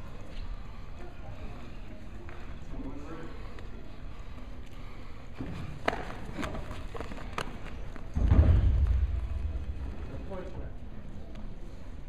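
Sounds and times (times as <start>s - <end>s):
loud low thudding rumble: 8.2s - 10.4s.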